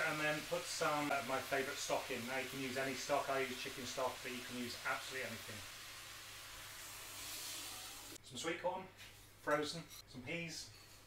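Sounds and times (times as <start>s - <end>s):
vegetables hissing in a saucepan: 0.0s - 8.2s
stock being poured: 6.0s - 8.2s.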